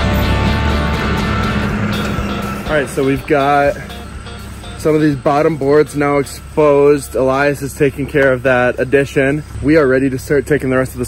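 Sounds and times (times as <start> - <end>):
background music: 0.0 - 9.5
telehandler engine running: 0.0 - 11.0
man speaking: 2.7 - 4.0, 4.8 - 11.0.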